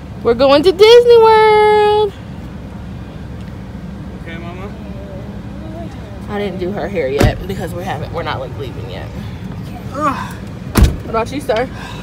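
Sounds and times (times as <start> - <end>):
car idling: 0.0 - 12.0.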